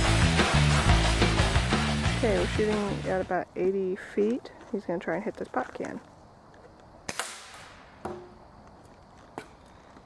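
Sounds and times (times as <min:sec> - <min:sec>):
pellet rifle shot: 0:07.1 - 0:08.3.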